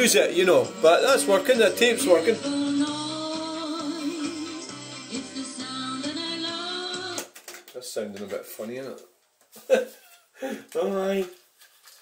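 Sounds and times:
singing on cassette tape: 0:02.0 - 0:07.3.

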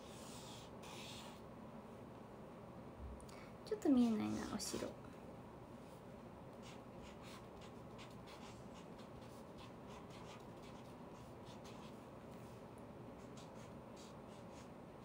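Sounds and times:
pen scratching on paper: 0:00.0 - 0:01.4, 0:06.6 - 0:12.0, 0:13.2 - 0:14.7.

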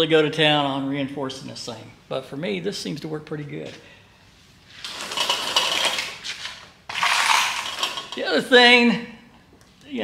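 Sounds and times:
metal parts clattering and rattling: 0:04.8 - 0:08.3.

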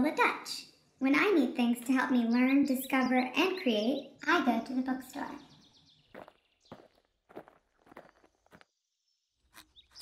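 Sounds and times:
soft footsteps: 0:06.1 - 0:08.8.

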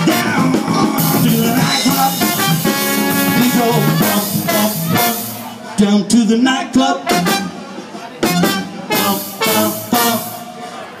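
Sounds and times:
funk band accented hits: 0:00.0 - 0:05.6, 0:06.8 - 0:10.6.

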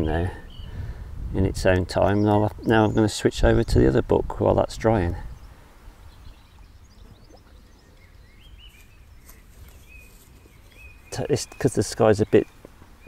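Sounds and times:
birds chirping faintly: 0:00.0 - 0:13.0.

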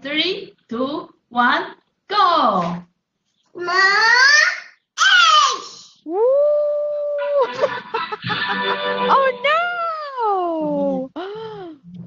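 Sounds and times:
child shouting: 0:03.6 - 0:05.9
woman saying ooh: 0:06.1 - 0:07.4, 0:09.6 - 0:11.2
app reward music: 0:07.2 - 0:09.8.

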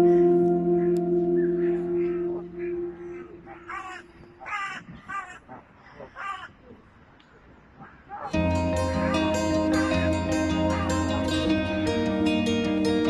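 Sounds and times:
music: 0:00.0 - 0:03.4, 0:08.4 - 0:13.0
crow cawing: 0:02.0 - 0:06.5.

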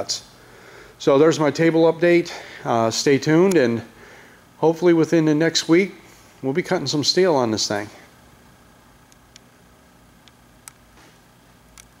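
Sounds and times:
small sharp clicks: 0:11.7 - 0:12.0.

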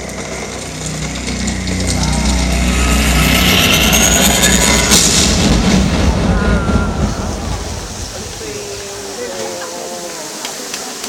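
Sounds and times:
fountain jets rushing water: 0:00.0 - 0:02.3, 0:05.8 - 0:11.0
steady low rumble: 0:00.0 - 0:09.2.

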